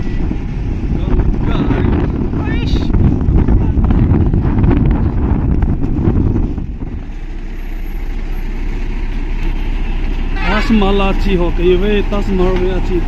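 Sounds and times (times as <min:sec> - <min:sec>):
wind buffeting microphone: 0:00.0 - 0:09.4
vehicle road rumble: 0:00.0 - 0:13.0.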